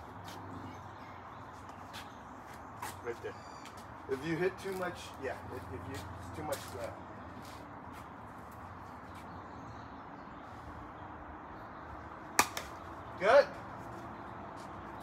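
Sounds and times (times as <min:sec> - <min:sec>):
golf club striking ball: 0:12.4 - 0:12.8.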